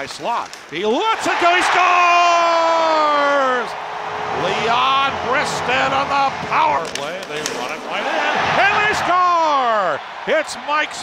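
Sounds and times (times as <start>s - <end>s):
hockey commentator speaking: 0.0s - 3.7s, 4.4s - 11.0s.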